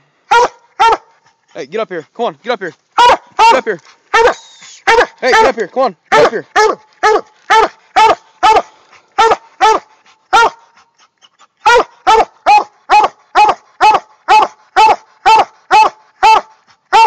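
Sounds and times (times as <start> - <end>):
hound barking: 0.3 - 1.4, 3.0 - 17.0.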